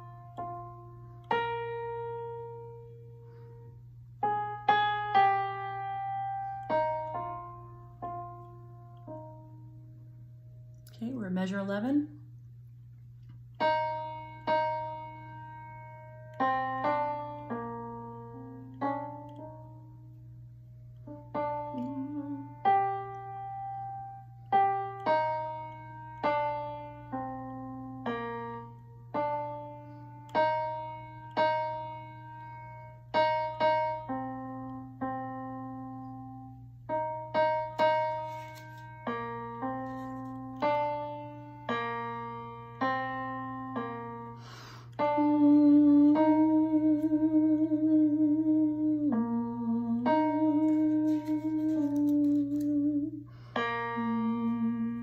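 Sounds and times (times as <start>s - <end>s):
digital piano playing slow chords: 0.0s - 10.9s, 12.2s - 55.0s
steady low hum: 0.0s - 55.0s.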